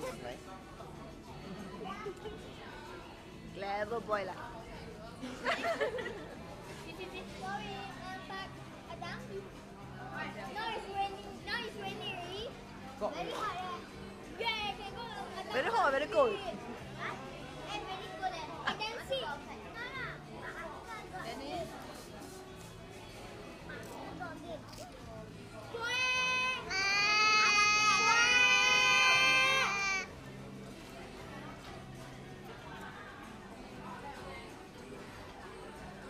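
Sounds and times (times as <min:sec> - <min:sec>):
faint chatter: 0:00.0 - 0:36.0
child wailing cry: 0:25.8 - 0:30.1.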